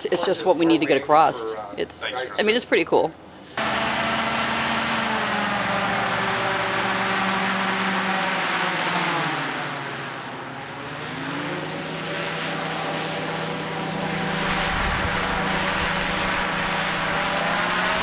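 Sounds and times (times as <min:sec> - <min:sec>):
propeller engine drone: 0:03.6 - 0:18.0.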